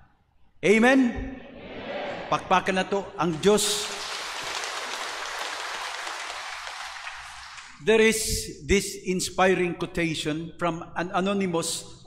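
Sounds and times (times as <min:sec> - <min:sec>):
congregation applauding: 0:03.2 - 0:07.9.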